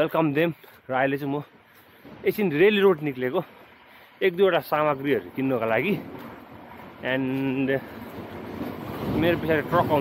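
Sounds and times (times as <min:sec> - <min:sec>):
man speaking: 0:00.0 - 0:01.5, 0:02.2 - 0:03.6, 0:04.2 - 0:06.1, 0:07.0 - 0:07.9, 0:09.1 - 0:10.0
wind noise on microphone: 0:05.9 - 0:10.0.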